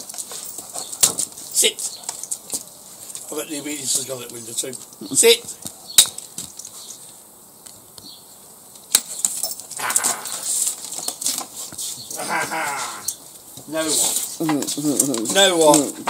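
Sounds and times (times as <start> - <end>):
people talking: 3.2 - 5.6, 9.8 - 10.6, 12.1 - 13.1, 13.7 - 16.0
people laughing: 12.1 - 13.1.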